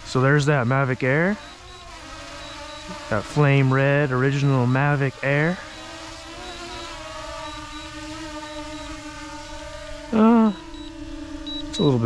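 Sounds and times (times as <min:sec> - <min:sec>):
drone propellers whining: 0:00.0 - 0:12.0.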